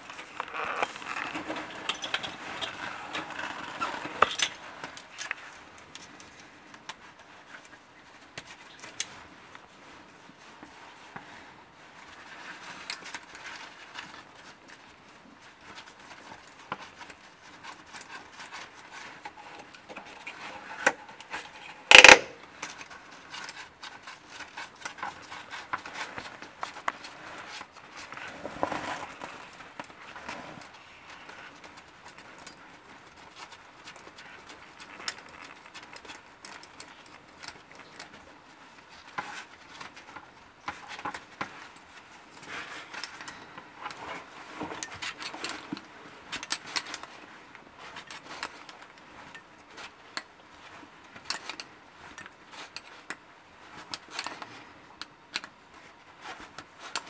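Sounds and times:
rustling of clothing and gear: 0.0 - 57.0
metal carabiners clinking: 0.4 - 6.4, 15.9 - 30.0, 30.6 - 41.7.

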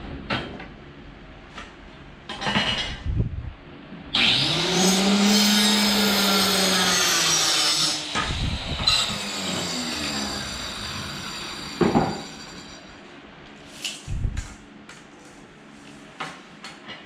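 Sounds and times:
circular saw cutting wood: 4.2 - 13.0.

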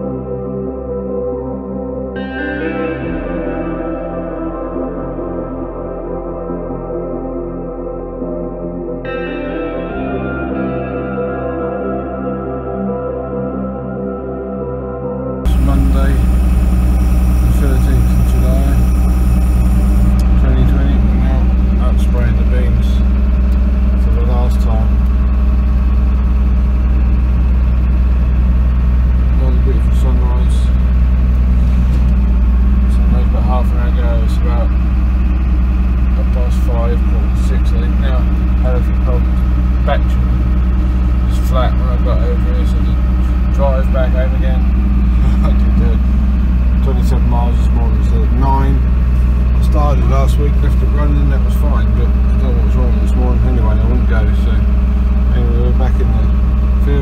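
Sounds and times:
engine droning inside cab: 15.4 - 57.0.

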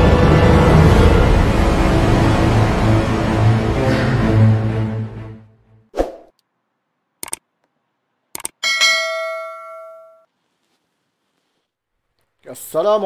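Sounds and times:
clicks: 7.2 - 7.8, 8.4 - 8.6
bell ding: 8.6 - 10.3.

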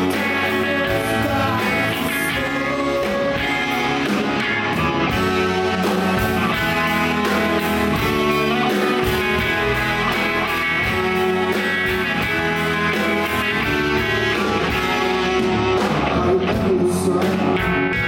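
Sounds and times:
drums: 0.0 - 18.0
electric guitars: 0.0 - 18.0
keyboard: 0.0 - 18.0.

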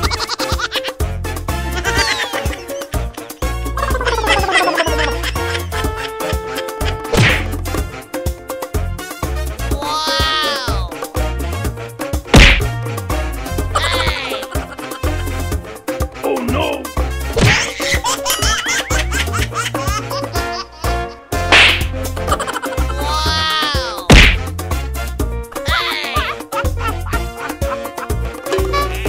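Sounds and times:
high-pitched giggling laugh: 0.0 - 1.0, 1.7 - 7.1, 9.8 - 10.9, 13.7 - 15.3, 17.5 - 21.3, 22.2 - 24.1, 25.7 - 29.0
upbeat background music: 0.0 - 29.0
loud whack: 7.1 - 7.6, 12.3 - 12.8, 17.3 - 17.7, 21.5 - 21.9, 24.1 - 24.5.

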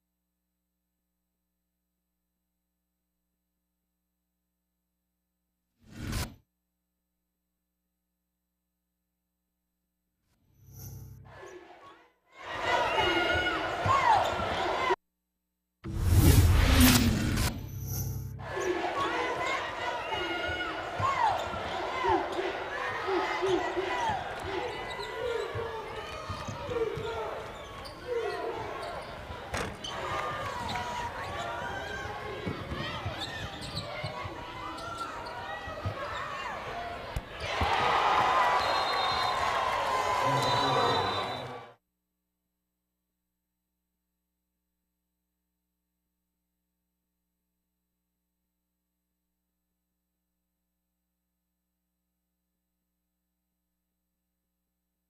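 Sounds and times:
sneakers squeaking: 12.6 - 14.8, 18.5 - 37.8.

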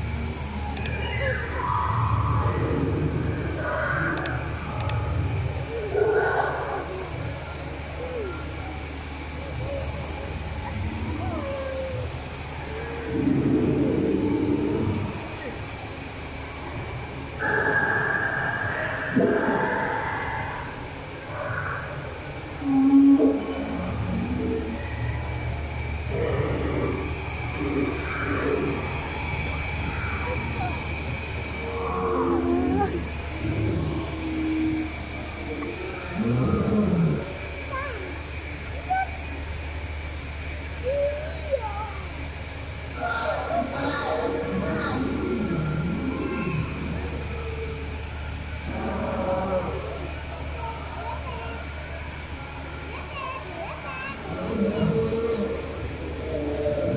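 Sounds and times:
steady low hum: 0.0 - 56.9
visitors' voices: 0.0 - 56.9
recorded dinosaur roars and growls: 0.8 - 7.3, 12.8 - 15.3, 17.4 - 24.9, 26.0 - 37.6, 43.1 - 50.3, 54.2 - 56.9.

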